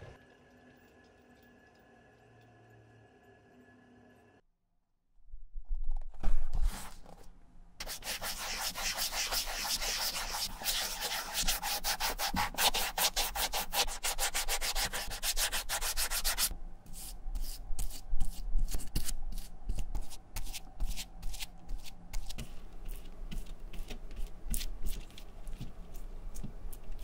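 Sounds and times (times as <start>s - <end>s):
bristle brush spreading glue: 7.8s - 27.0s
cotton swab scrubbing foam: 7.8s - 27.0s.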